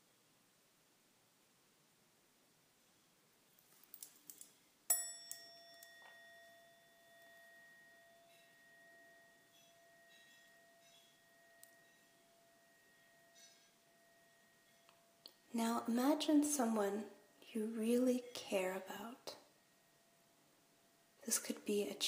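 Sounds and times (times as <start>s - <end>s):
singing bowl ringing: 4.9s - 17.4s.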